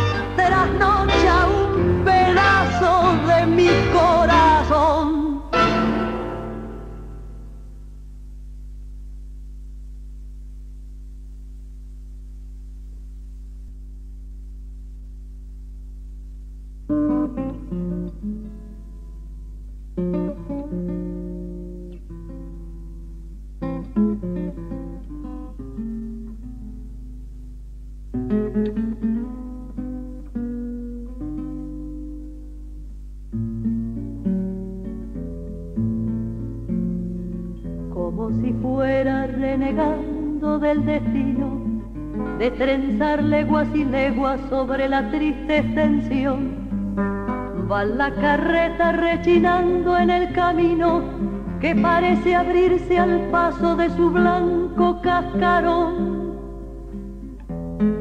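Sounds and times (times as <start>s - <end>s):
plucked guitar: 0.0s - 8.0s, 16.8s - 58.0s
low tape hum: 0.0s - 58.0s.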